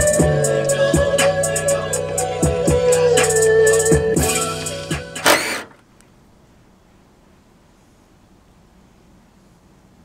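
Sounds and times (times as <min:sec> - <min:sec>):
music with drum beat on speakers: 0:00.0 - 0:05.3
faint background noise: 0:05.0 - 0:10.0.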